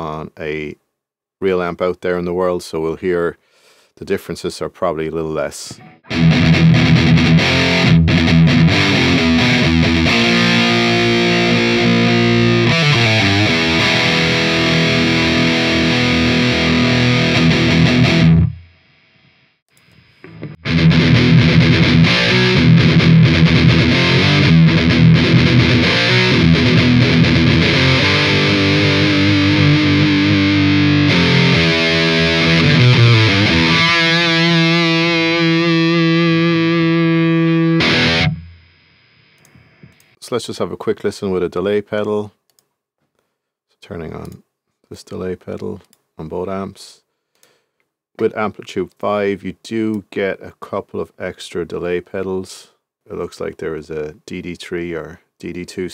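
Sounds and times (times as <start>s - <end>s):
distorted electric guitar: 5.7s - 40.2s.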